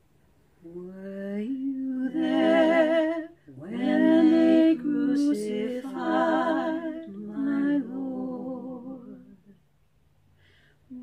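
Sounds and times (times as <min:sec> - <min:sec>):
woman singing a cappella harmony: 0:00.6 - 0:09.6.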